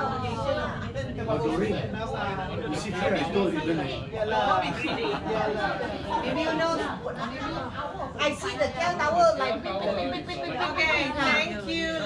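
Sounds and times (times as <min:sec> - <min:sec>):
group of people chatting: 0:00.0 - 0:12.0.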